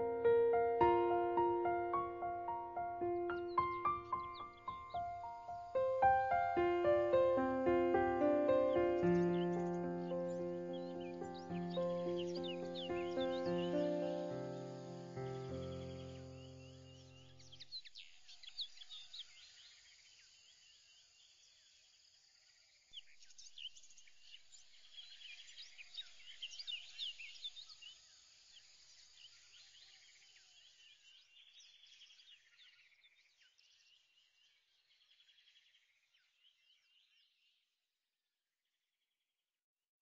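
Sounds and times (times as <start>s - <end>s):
background music chords: 0.0s - 16.8s
birds chirping and whistling: 3.1s - 14.8s.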